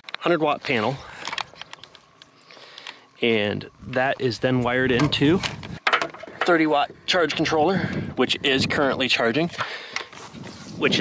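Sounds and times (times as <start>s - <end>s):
handling clicks and rustles: 0.0s - 7.6s
faint outdoor background: 0.0s - 11.0s.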